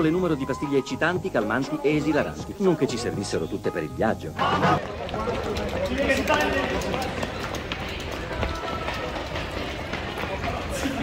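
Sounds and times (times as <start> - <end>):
running footfalls: 4.7 - 11.0.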